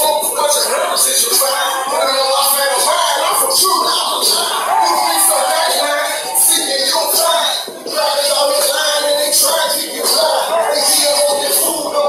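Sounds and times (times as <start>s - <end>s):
hip hop beat: 0.0s - 12.0s
man rapping: 0.0s - 12.0s.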